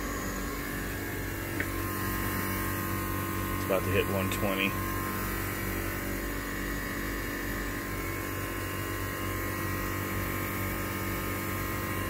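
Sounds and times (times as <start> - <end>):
heat pump humming: 0.0 - 12.0.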